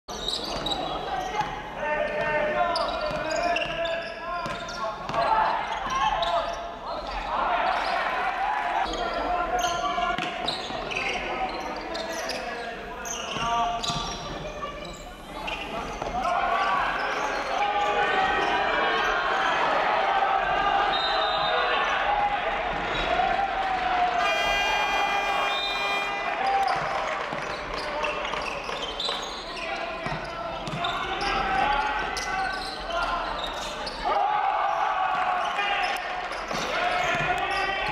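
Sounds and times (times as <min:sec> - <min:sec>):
voices echoing in gym: 0:00.1 - 0:37.9.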